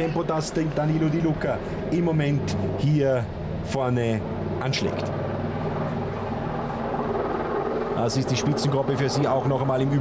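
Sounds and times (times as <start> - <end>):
steady engine drone: 0.0 - 10.0.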